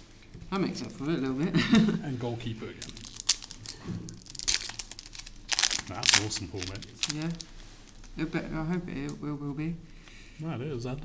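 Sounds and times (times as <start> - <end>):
foil ripping: 2.8 - 8.2
foil wrapper crinkling: 2.8 - 8.2.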